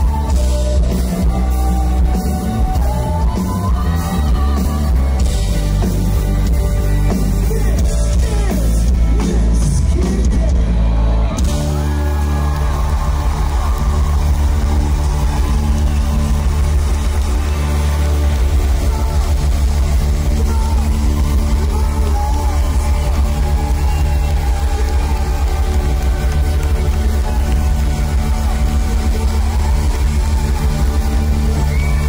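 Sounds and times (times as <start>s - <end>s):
live rock band playing: 0.0s - 32.0s.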